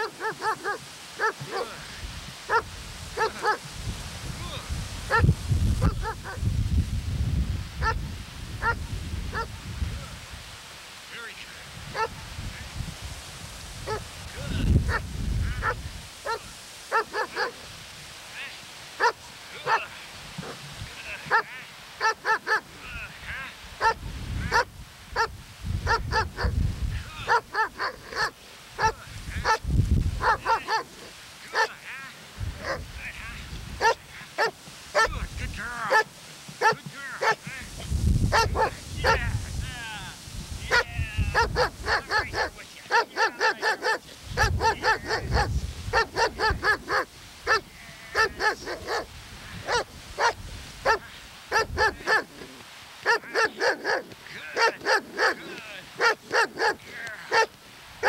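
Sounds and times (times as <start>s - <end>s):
dog barking: 0.0s - 1.8s, 2.5s - 3.6s, 5.1s - 6.4s, 7.8s - 8.0s, 8.6s - 9.6s, 11.9s - 12.2s, 13.8s - 14.0s, 15.6s - 17.6s, 19.0s - 20.6s, 21.2s - 22.6s, 23.8s - 26.5s, 27.3s - 29.6s, 30.2s - 31.8s, 32.6s - 32.8s, 33.8s - 35.1s, 35.9s - 37.5s, 38.3s - 39.2s, 40.7s - 57.5s
low rumbles on microphone: 2.0s - 10.2s, 23.9s - 27.1s, 29.0s - 30.5s, 32.4s - 33.8s, 37.5s - 39.7s.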